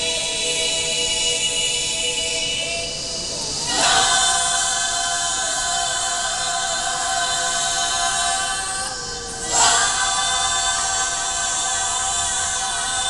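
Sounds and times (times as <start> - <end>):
women's choir singing unaccompanied: 0.0 - 13.0.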